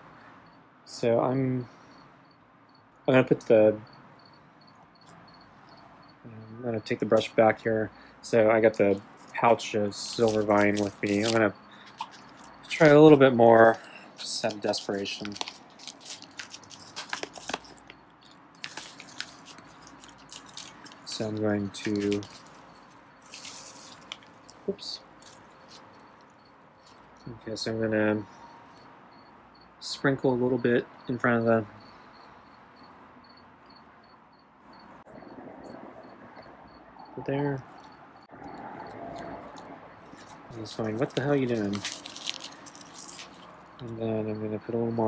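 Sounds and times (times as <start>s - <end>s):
cricket chirps: 0.0s - 45.0s
pouch crinkling and clicking: 10.1s - 13.1s, 13.7s - 21.2s, 21.8s - 24.6s, 25.2s - 27.1s, 39.2s - 43.9s.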